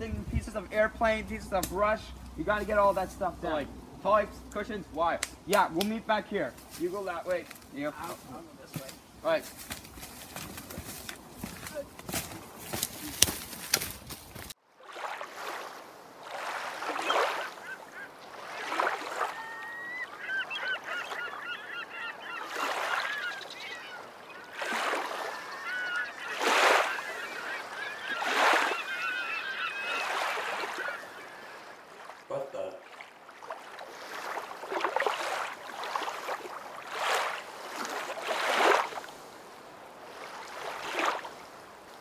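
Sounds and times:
footsteps through dry leaves: 6.6 - 14.6
waves washing onto shore: 14.8 - 21.1, 22.4 - 42.0
honking bird calls: 16.8 - 32.8.

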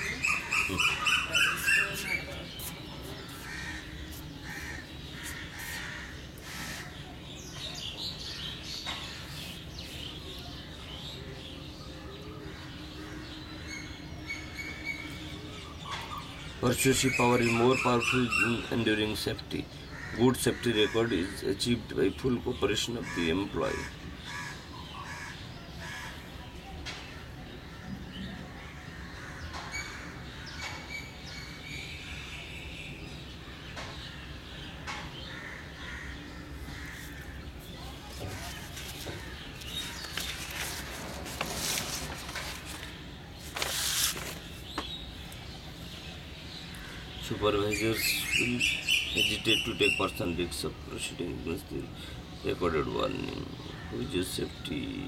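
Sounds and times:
birds calling: 0.0 - 55.0.

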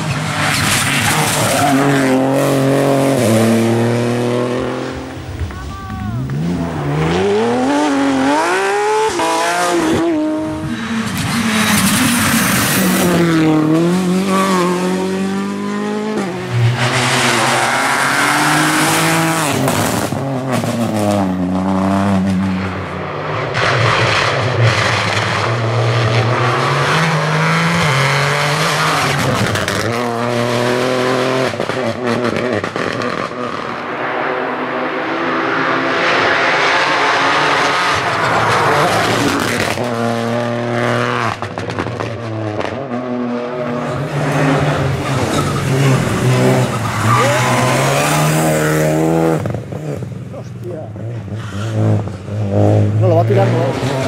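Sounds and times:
rally car engines revving hard: 0.0 - 5.5, 6.1 - 54.0.

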